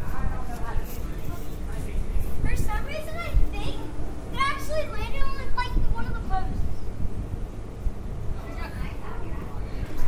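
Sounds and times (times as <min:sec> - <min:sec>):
children calling out and talking: 0:01.6 - 0:07.0.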